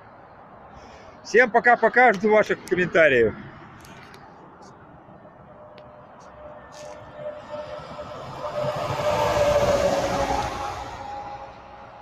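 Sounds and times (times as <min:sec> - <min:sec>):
vehicle passing at speed: 0:03.2 - 0:12.0.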